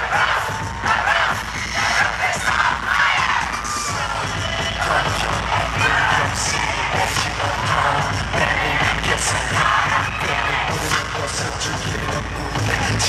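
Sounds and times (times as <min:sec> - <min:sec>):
fans cheering: 0:00.0 - 0:13.0
loud pop music with singing: 0:00.0 - 0:13.0.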